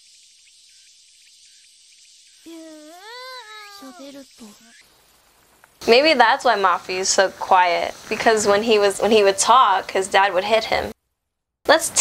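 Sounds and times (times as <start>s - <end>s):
high-pitched vocal calls: 2.4s - 5.2s.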